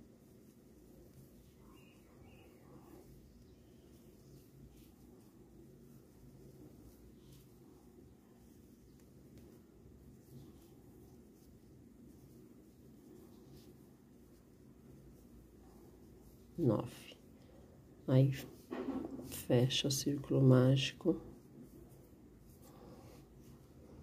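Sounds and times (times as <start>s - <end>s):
faint low hum: 0.0s - 24.0s.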